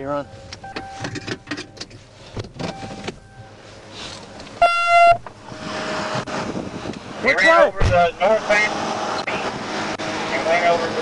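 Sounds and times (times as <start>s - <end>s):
loud electronic beep: 4.6s - 5.2s.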